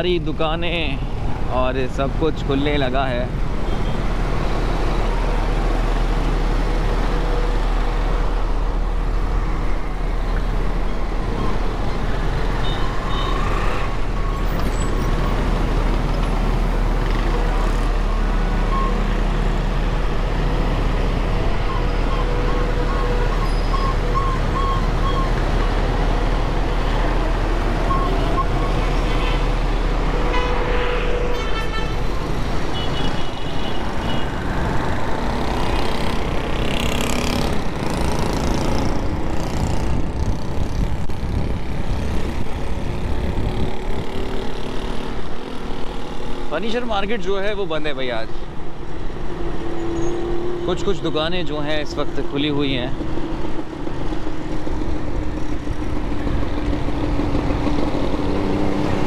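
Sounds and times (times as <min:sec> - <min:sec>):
rumble of vehicles: 0:00.0 - 0:59.0
car horns tooting: 0:27.9 - 0:34.4.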